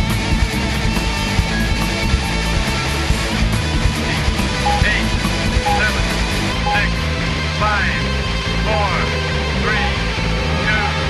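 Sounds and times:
industrial rock music: 0.0 - 11.0
short electronic beep: 4.6 - 6.0.

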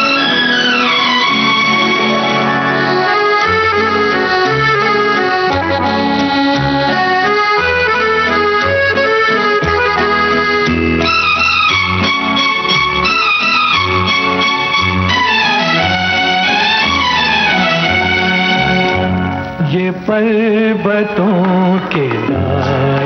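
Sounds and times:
wavering melody line: 0.0 - 19.6
melody over bass line: 0.0 - 21.8.

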